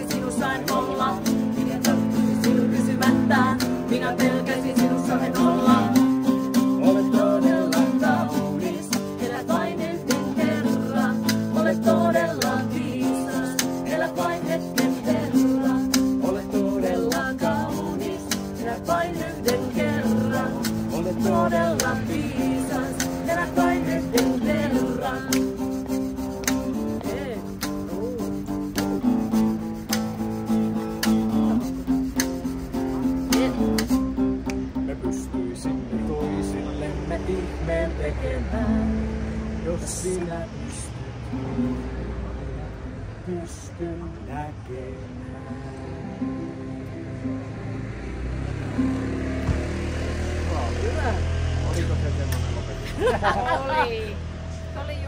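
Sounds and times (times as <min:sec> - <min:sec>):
voices: 0:00.0 - 0:28.5, 0:50.1 - 0:55.0
acoustic guitar strumming: 0:00.0 - 0:40.5, 0:45.2 - 0:52.1.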